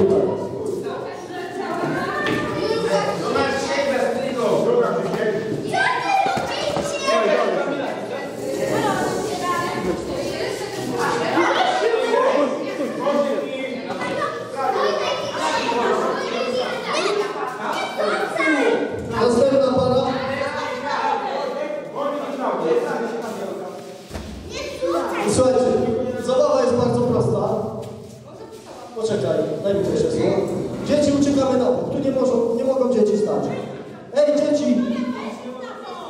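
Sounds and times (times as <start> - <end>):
children chattering and calling out: 0.0 - 36.0
people speaking in a hall: 0.0 - 36.0.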